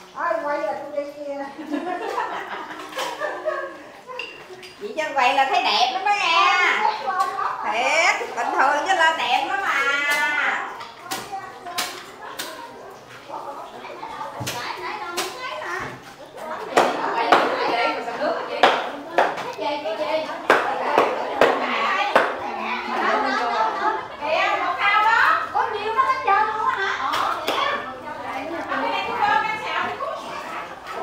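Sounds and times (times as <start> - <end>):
children's voices and chatter: 0.0 - 31.0.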